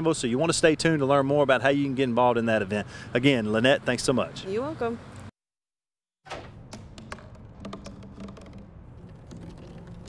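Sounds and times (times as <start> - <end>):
plastic bottle knocking on pavement: 6.3 - 10.0.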